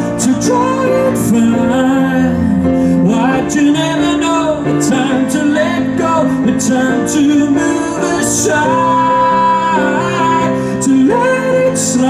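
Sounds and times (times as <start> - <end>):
man singing into microphone: 0.0 - 12.0
upright piano accompaniment: 0.0 - 12.0.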